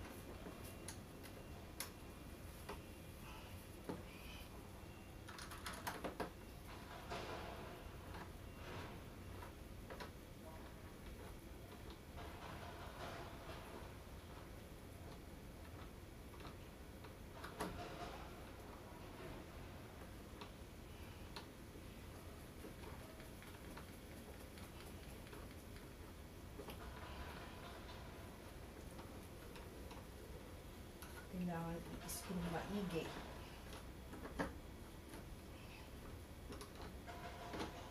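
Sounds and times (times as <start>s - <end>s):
person's voice: 31.3s - 33.2s.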